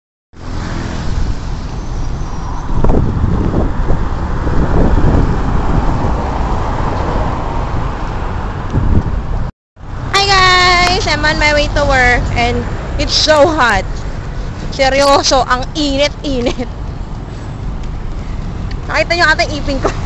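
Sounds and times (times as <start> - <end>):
road traffic rumble: 0.4 - 20.0.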